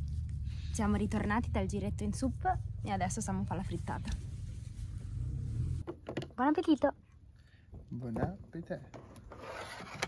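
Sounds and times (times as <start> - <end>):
low background rumble: 0.0 - 7.2.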